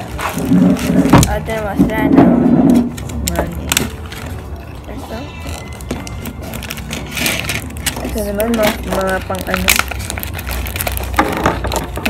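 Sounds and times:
plastic packets crinkling: 0:00.0 - 0:02.0, 0:02.9 - 0:12.0.

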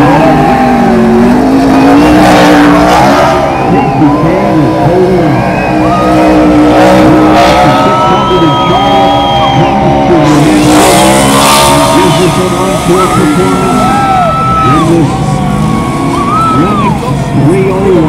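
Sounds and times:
car engine revving hard: 0:00.0 - 0:18.0
tyres squealing on asphalt: 0:00.0 - 0:18.0.

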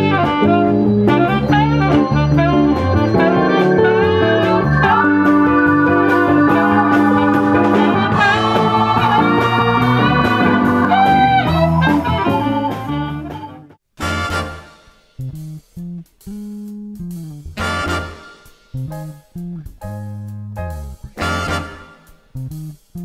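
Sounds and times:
big band jazz: 0:00.0 - 0:23.0.

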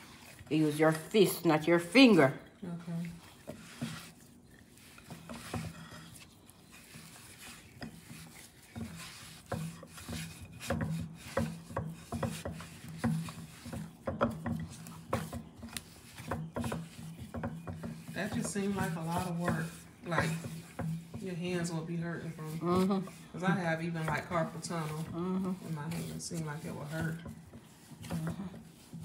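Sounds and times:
dough kneaded in glass bowl: 0:00.0 - 0:29.0.

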